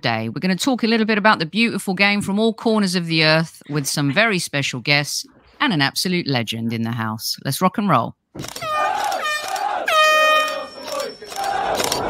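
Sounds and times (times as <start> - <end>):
sharp click: 8.4 - 9.7
voices shouting drawn-out calls: 8.6 - 12.0.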